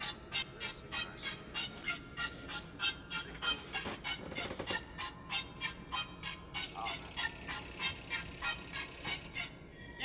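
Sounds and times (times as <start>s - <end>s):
rhythmic electronic honking tones: 6.6s - 9.6s.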